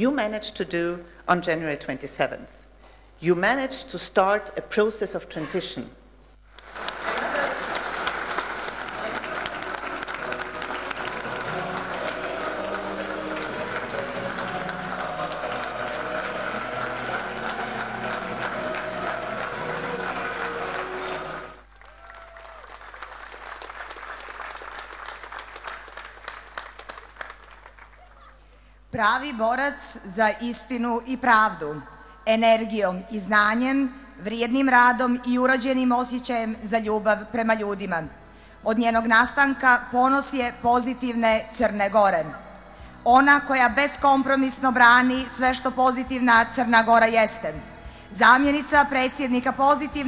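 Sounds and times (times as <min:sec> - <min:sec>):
woman speaking: 0:00.0 - 0:02.5, 0:03.2 - 0:06.0, 0:29.0 - 0:38.1, 0:38.7 - 0:42.4, 0:43.1 - 0:50.0
crowd applauding: 0:06.6 - 0:28.4.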